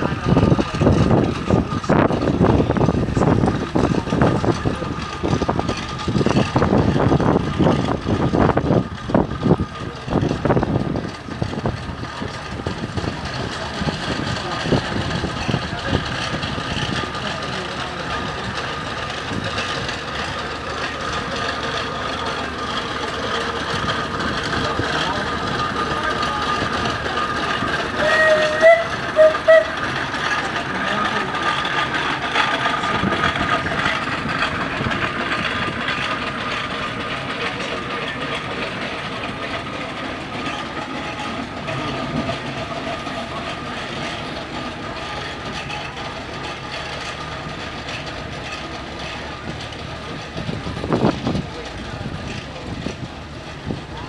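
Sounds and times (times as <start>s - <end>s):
steam engine running: 0.0s - 54.0s
steam whistle toots: 28.0s - 29.9s.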